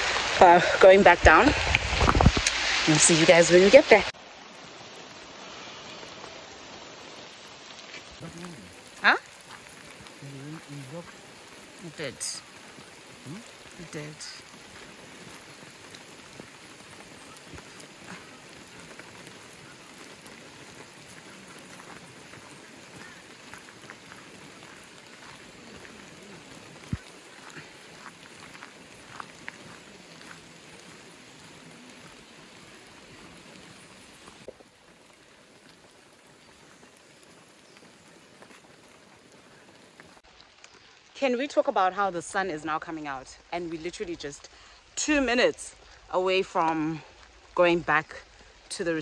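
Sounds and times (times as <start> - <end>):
rain falling on leaves: 0.0 - 49.0
sharp rain drops: 0.0 - 49.0.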